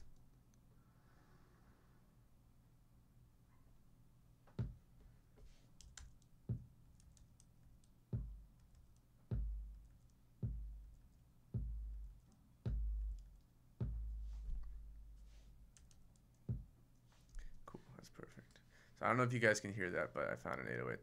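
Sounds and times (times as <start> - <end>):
deep kick drum booms: 8.2 - 8.4, 9.3 - 9.8, 10.4 - 10.9, 11.6 - 12.1, 12.7 - 13.2, 13.8 - 15.3, 16.5 - 16.7.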